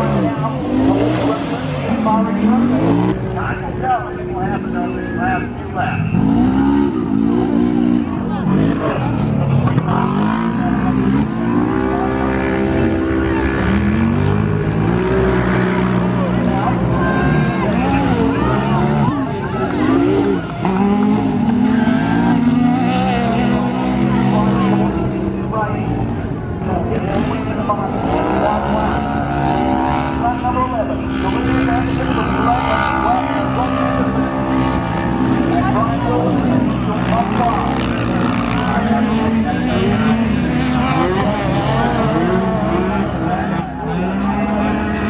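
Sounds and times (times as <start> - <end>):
race car engines revving: 0.0 - 45.0.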